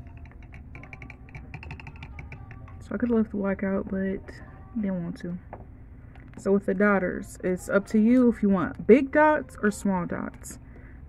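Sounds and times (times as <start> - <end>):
acrylic nails clicking: 0.0 - 3.0.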